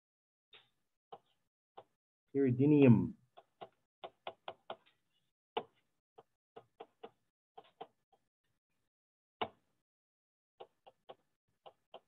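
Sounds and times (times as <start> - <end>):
stylus tapping on pen tablet: 1.1 - 2.0, 3.3 - 5.0, 5.6 - 8.0, 9.4 - 9.6, 10.6 - 12.0.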